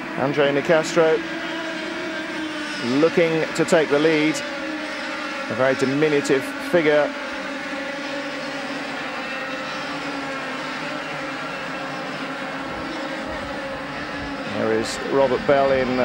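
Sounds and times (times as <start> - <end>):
kart engines buzzing: 0.0 - 16.0.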